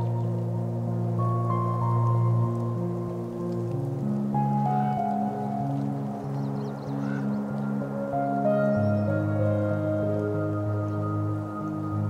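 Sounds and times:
slow ambient music: 0:00.0 - 0:12.0.

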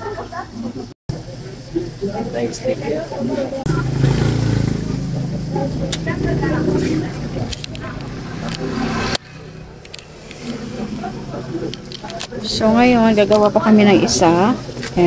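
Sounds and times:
indistinct background voices: 0:01.6 - 0:15.0.

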